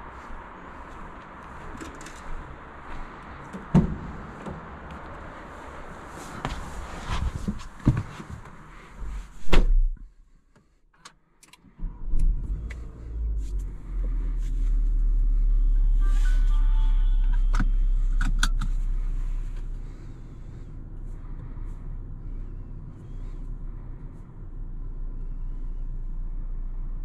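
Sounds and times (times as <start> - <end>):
car engine starting and idling: 11.0 - 27.0.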